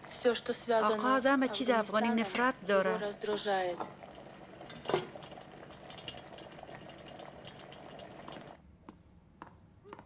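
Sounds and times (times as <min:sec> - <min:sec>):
pot of food simmering: 0:00.0 - 0:08.6.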